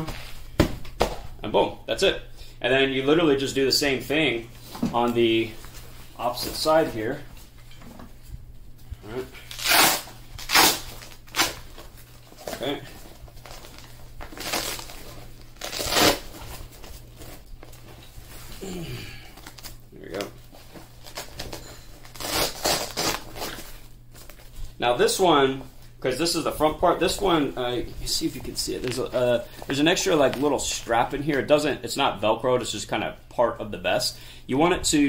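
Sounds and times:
velcro ripping open: 9.4 - 11.8, 13.4 - 16.6, 22.0 - 23.8.

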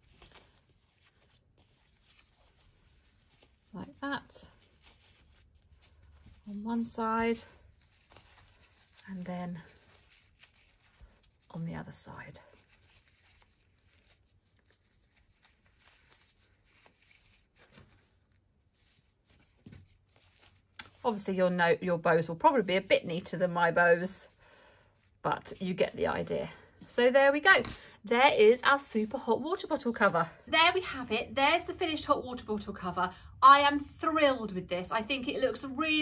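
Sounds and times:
rustling of ribbon and fabric: 0.0 - 36.0.

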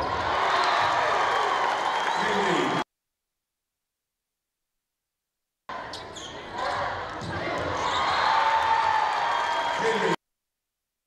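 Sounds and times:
crowd cheering: 0.0 - 2.8, 6.5 - 10.2
sneaker squeaks: 5.8 - 6.5.

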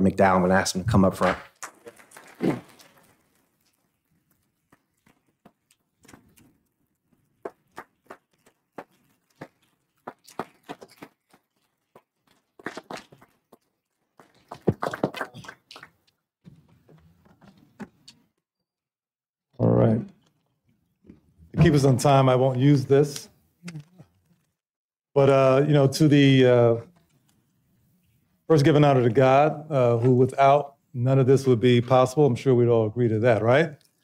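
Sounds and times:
small group applauding: 1.6 - 3.0, 14.2 - 16.0.

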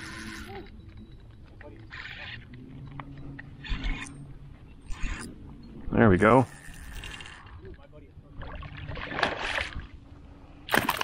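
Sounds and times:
water splashes: 8.3 - 9.9, 10.7 - 11.0.

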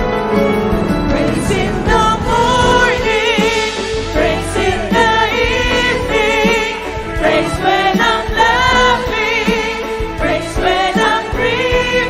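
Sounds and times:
drums: 0.0 - 12.0
keyboard: 0.0 - 12.0
backing singers: 0.1 - 12.0
woman singing lead: 0.9 - 12.0.

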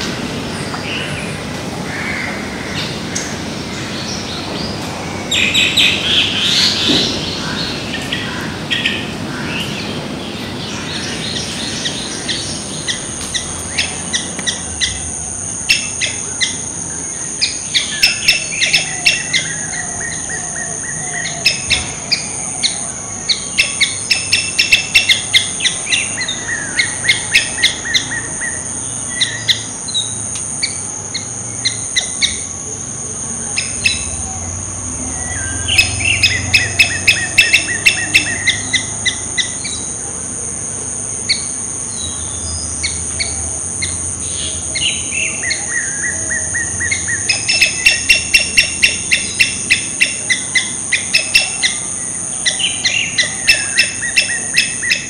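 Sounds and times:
songbird chirping rapidly: 2.8 - 55.0
high-pitched insect drone: 10.9 - 55.0.

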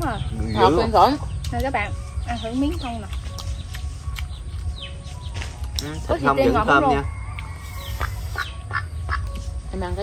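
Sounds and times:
duck calling: 7.9 - 9.3.

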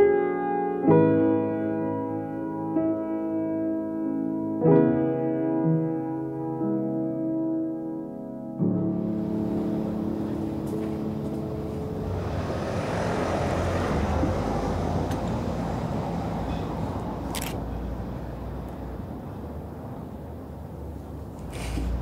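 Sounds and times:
car passing: 8.9 - 22.0.

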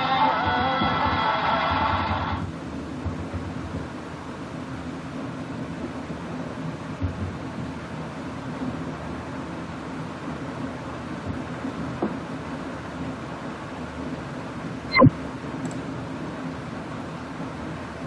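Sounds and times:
low hum: 14.9 - 15.2.

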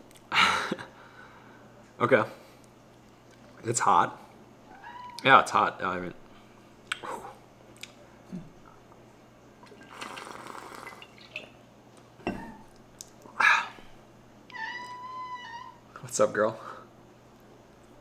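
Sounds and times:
cat meowing: 4.7 - 5.2, 14.5 - 15.8.

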